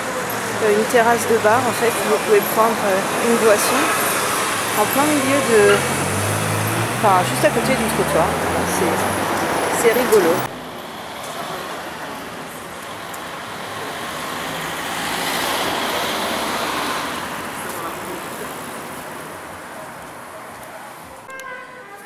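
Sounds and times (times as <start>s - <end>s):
vehicle passing: 0.0s - 10.6s, 13.4s - 19.7s
city street traffic: 0.0s - 22.0s.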